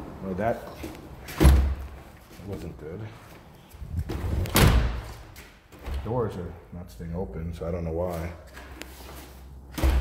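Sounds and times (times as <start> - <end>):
door thudding shut: 4.1 - 5.0, 9.8 - 10.0.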